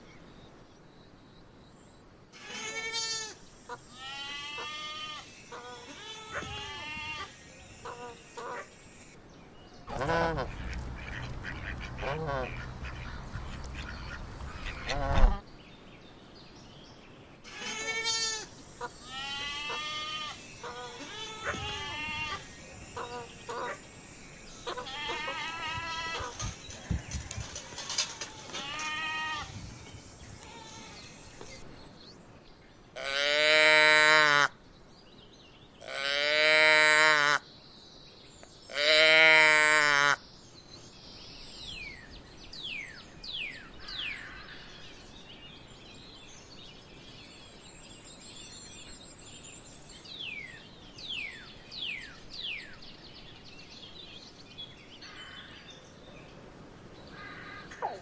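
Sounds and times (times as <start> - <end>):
calf bawling: 2.4 - 8.7, 17.5 - 23.8, 24.6 - 29.6.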